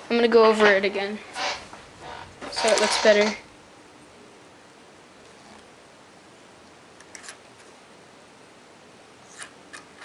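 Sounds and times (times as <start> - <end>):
scratchy clicks of small objects: 2.5 - 3.4.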